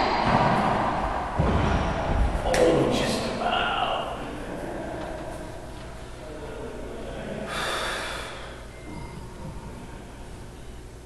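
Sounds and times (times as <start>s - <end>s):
person breathing out sharply: 7.5s - 8.7s.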